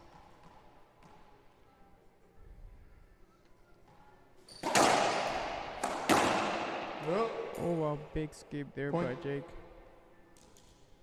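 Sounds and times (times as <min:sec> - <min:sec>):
racquetball hitting wall: 0:04.6 - 0:07.8.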